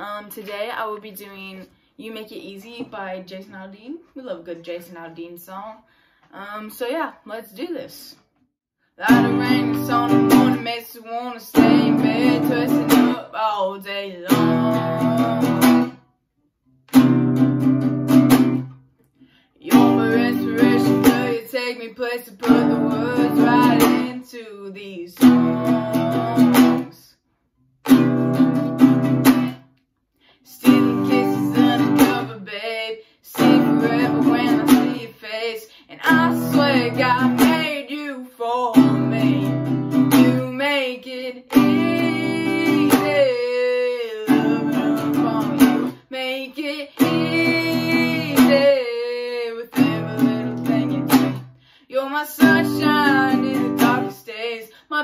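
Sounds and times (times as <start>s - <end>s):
acoustic guitar strumming chords: 9.0s - 10.8s, 11.6s - 13.2s, 14.3s - 16.0s, 16.9s - 18.8s, 19.7s - 21.4s, 22.4s - 24.2s, 25.2s - 26.9s, 27.8s - 29.6s, 30.6s - 32.4s, 33.4s - 35.2s, 36.0s - 37.8s, 38.8s - 40.6s, 41.5s - 46.0s, 47.0s - 48.8s, 49.7s - 51.6s, 52.4s - 54.2s.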